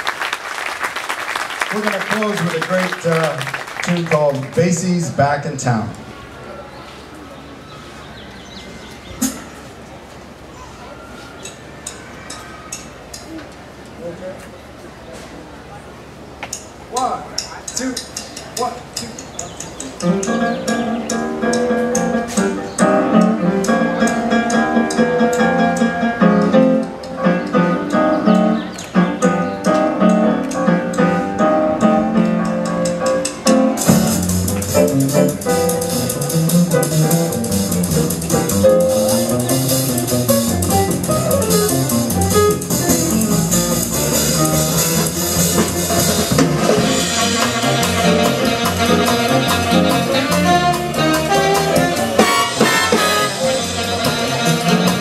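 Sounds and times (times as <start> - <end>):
jazz big band swing tune: 20.0 - 55.0.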